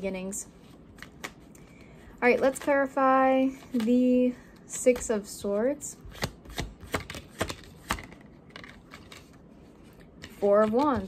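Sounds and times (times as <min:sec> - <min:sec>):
cards being shuffled: 0:00.6 - 0:04.0, 0:06.1 - 0:11.0.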